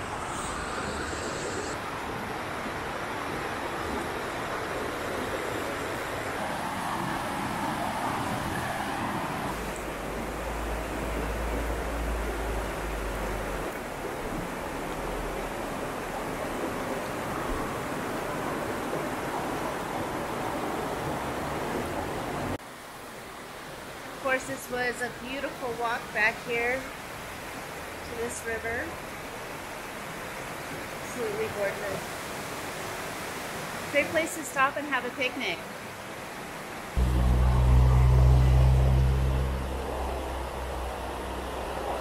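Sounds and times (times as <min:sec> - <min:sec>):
river rushing over rocks: 0:00.0 - 0:24.2
low rumble: 0:37.0 - 0:42.0.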